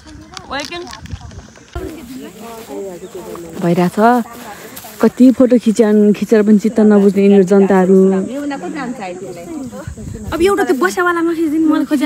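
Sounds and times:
women talking: 0.0s - 12.0s.

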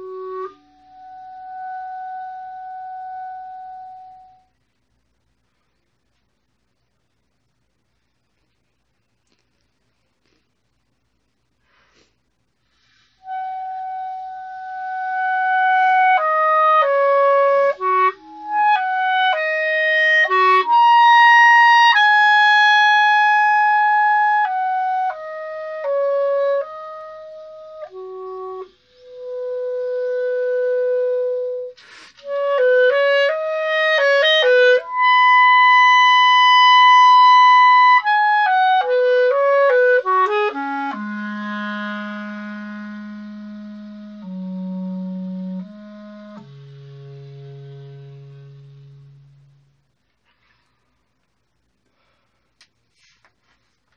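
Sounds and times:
solo clarinet melody: 0.0s - 4.6s, 13.0s - 50.0s.

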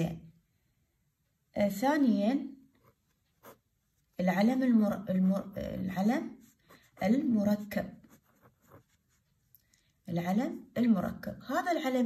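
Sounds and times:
marker pen scratching on paper: 2.7s - 9.6s.

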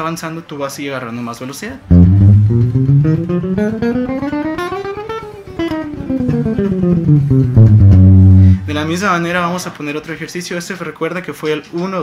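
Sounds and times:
electric guitar single notes: 1.8s - 9.1s.

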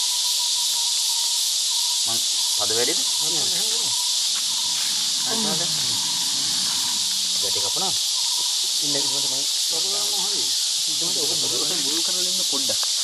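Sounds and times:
high-pitched insect chorus: 0.0s - 13.0s
low voices murmuring: 2.9s - 8.0s.

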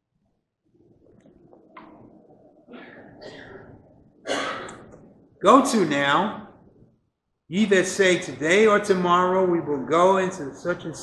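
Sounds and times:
man reading aloud: 5.4s - 6.6s, 7.5s - 11.0s.

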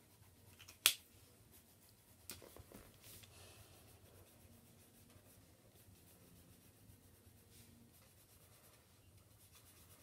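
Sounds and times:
coloured pencils scratching paper: 0.0s - 0.8s, 1.4s - 10.0s.

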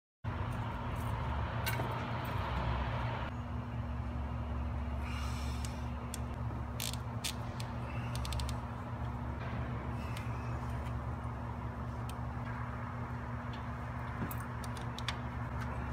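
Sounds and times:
steady low hum: 0.3s - 15.9s.

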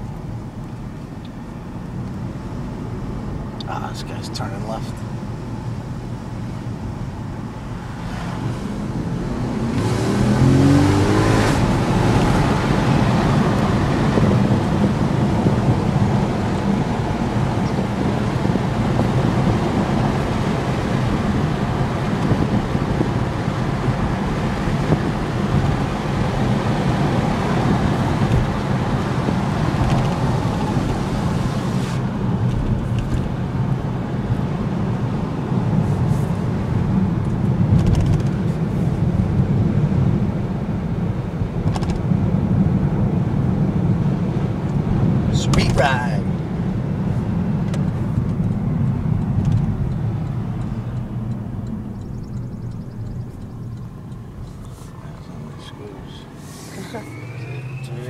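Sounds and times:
car engine drone from inside cabin: 0.0s - 58.0s
road noise: 0.0s - 58.0s.

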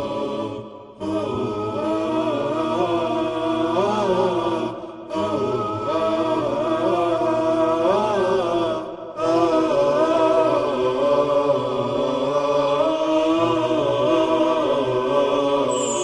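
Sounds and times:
unaccompanied vocal chant: 0.0s - 16.0s.

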